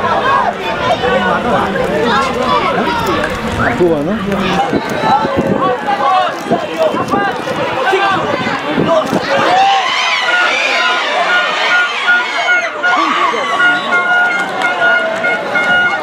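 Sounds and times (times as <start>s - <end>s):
voices talking and calling out: 0.0s - 16.0s.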